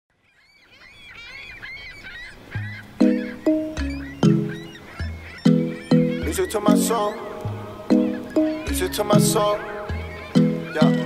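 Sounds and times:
birds calling: 0.1s - 11.0s
sharp chord hits: 3.0s - 4.7s.

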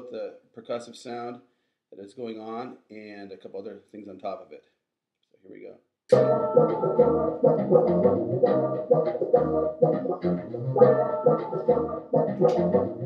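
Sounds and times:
distorted bassoon tones: 6.1s - 13.0s.

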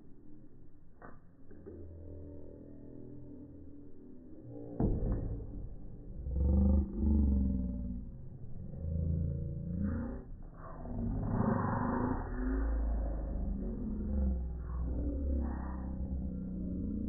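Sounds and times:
slowed deep voices: 0.0s - 17.0s.

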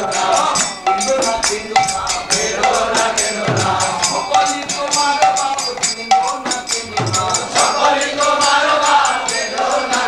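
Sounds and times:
sharp bright percussion strikes: 0.0s - 10.0s.

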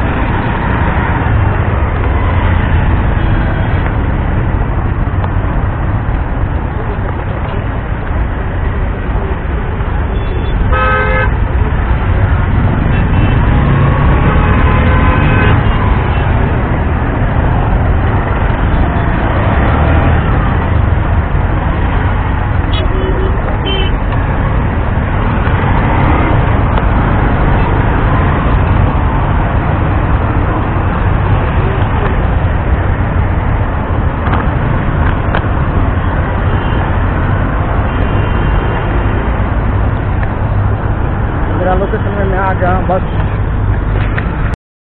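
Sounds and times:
busy road traffic rumble: 0.0s - 44.6s
vehicle horn honking: 10.1s - 11.4s, 14.7s - 15.9s, 22.7s - 24.0s.

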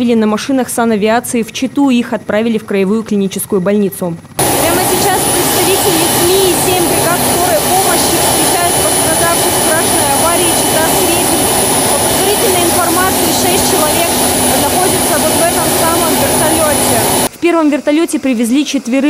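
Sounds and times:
helicopter turbine engines whining: 0.0s - 19.0s
woman talking: 0.0s - 19.0s.

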